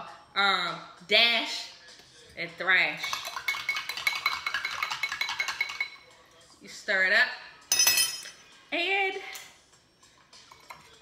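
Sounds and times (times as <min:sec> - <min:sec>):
spoon clinking on glass: 0:03.0 - 0:06.1, 0:07.7 - 0:08.4.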